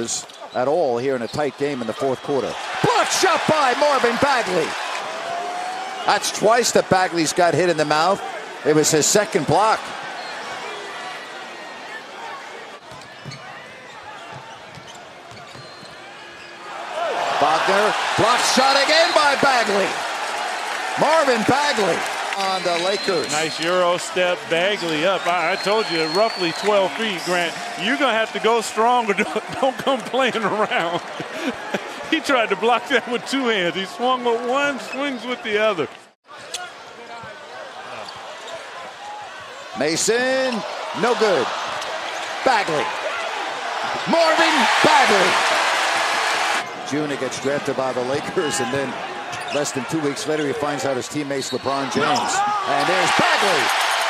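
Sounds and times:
arena crowd noise: 0.0s - 54.0s.

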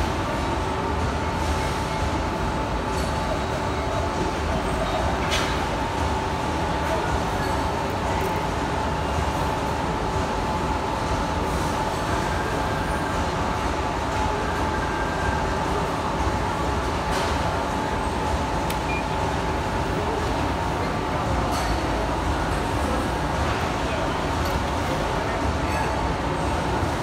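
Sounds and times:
machine hum with whine: 0.0s - 27.0s.

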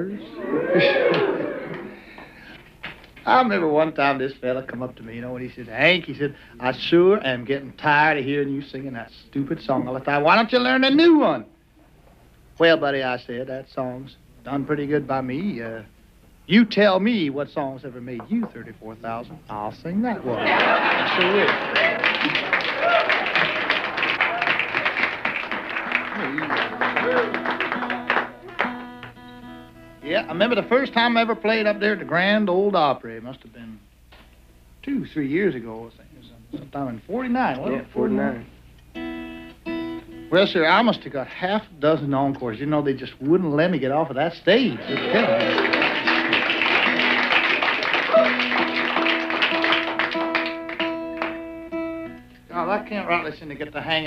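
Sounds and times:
audience clapping and laughing: 0.6s - 2.0s, 20.3s - 28.9s, 44.8s - 51.4s
man talking: 3.3s - 11.5s, 16.5s - 21.6s, 30.0s - 33.8s, 34.8s - 38.5s, 40.3s - 45.7s, 52.5s - 54.0s
guitar notes ringing: 25.9s - 32.7s, 37.5s - 40.6s, 48.3s - 53.3s
sharp guitar strums: 25.9s - 32.7s, 37.8s - 41.1s, 48.4s - 53.3s.

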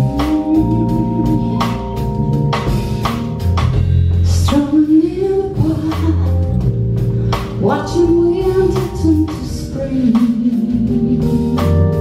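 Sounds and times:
woman singing: 0.0s - 1.8s, 4.2s - 6.7s, 7.6s - 12.0s
drum kit with cymbal hits: 0.0s - 12.0s
electric bass: 0.0s - 12.0s
stage piano: 0.0s - 12.0s.

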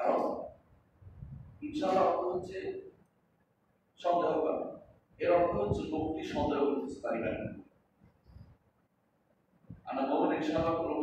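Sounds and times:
man speaking: 0.0s - 0.5s, 1.6s - 2.9s, 4.0s - 7.6s, 9.9s - 11.0s.

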